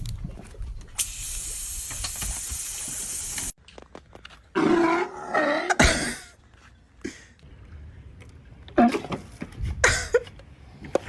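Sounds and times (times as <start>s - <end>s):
water hissing from hose nozzle: 1.0s - 3.6s.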